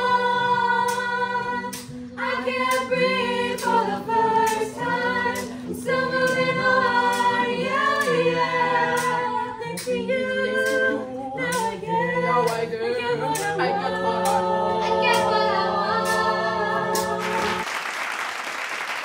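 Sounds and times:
girls singing in harmony: 0:00.0 - 0:17.6.

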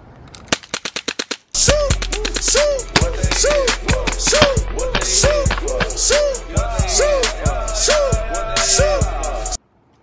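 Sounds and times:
pistol rapid-fire cracks: 0:00.5 - 0:04.6
music with steady bass: 0:01.6 - 0:09.6.

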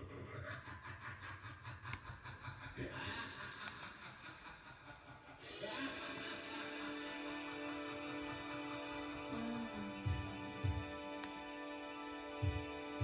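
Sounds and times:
radio music: 0:05.4 - 0:13.0.

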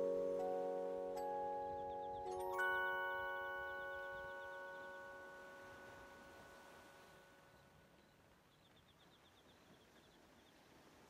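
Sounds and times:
music box chord ringing: 0:00.0 - 0:07.3.

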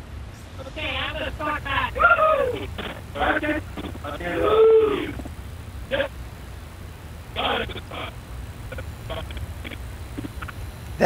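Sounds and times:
low steady hum: 0:00.0 - 0:11.0
faint thin voices over radio: 0:00.3 - 0:06.3, 0:07.2 - 0:11.0.

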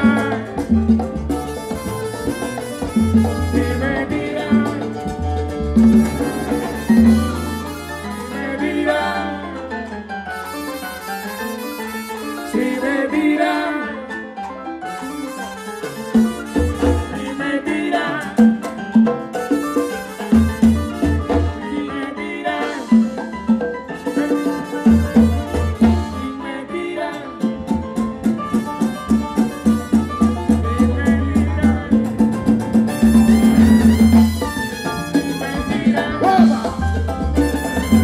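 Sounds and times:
live salsa band: 0:00.0 - 0:38.0.

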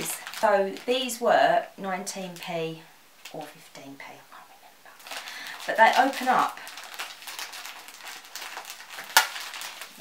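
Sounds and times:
tissue wrapper crinkling: 0:00.0 - 0:01.3, 0:03.2 - 0:03.6, 0:04.9 - 0:10.0.

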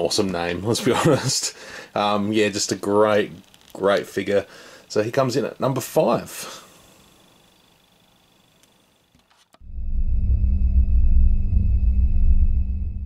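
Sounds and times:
faint high whine: 0:02.0 - 0:13.0
click: 0:08.6 - 0:09.6
deep rumbling drone: 0:09.6 - 0:13.0.

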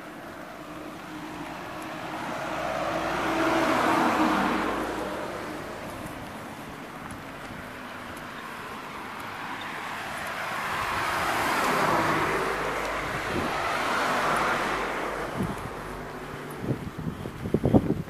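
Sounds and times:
car driving past: 0:01.1 - 0:05.8, 0:09.3 - 0:16.6.

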